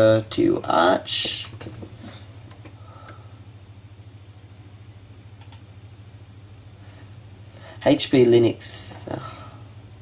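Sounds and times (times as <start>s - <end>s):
low background hum: 0.0s - 10.0s.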